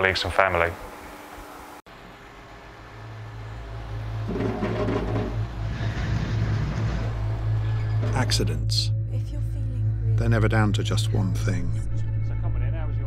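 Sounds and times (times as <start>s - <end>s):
diesel engine drone: 0.0s - 13.0s.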